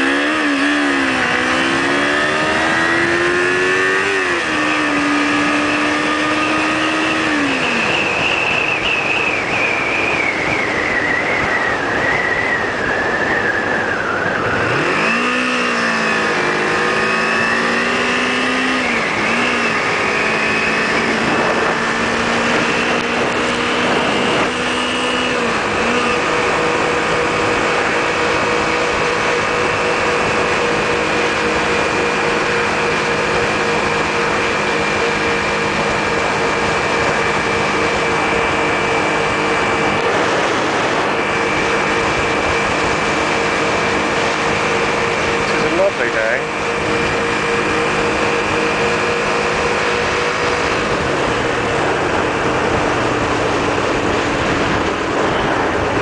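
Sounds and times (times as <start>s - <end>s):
motorcycle engine running: 0.0s - 56.0s
wind and road rush: 0.0s - 56.0s.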